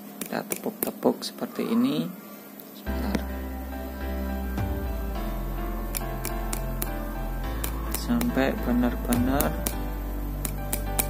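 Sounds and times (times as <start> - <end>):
background music: 2.9 - 11.0.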